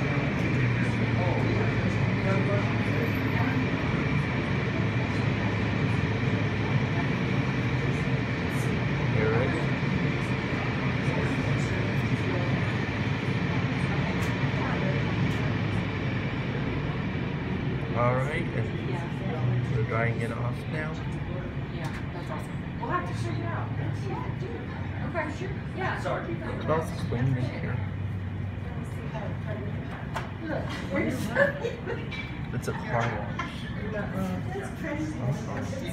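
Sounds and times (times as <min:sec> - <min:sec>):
car wash machinery: 0:00.0 - 0:35.9
continuous low hum: 0:00.0 - 0:35.9.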